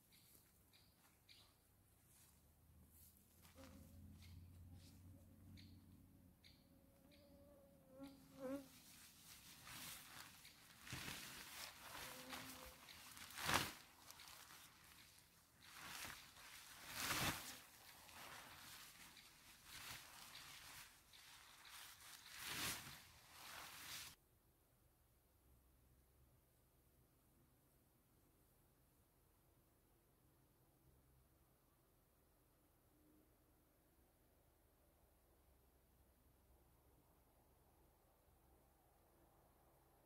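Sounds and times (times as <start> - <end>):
tarp rustling and swishing: 8.7 - 24.2
tarp flapping: 9.2 - 24.2.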